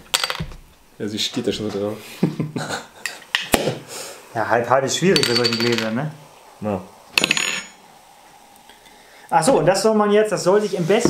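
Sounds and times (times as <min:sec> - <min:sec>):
sparkling wine pouring: 0:04.3 - 0:10.6
glass bottle clinking wine glass: 0:05.1 - 0:06.0.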